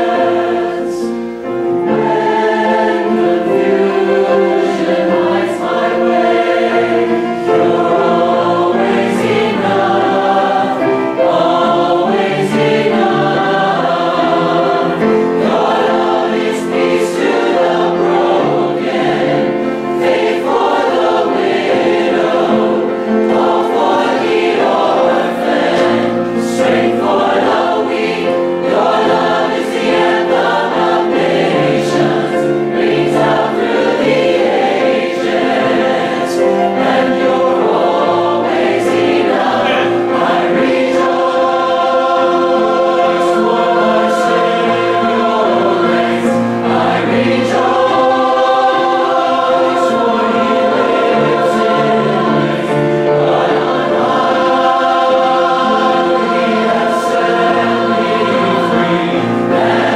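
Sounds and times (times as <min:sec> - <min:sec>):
choir singing: 0:00.0 - 0:59.9.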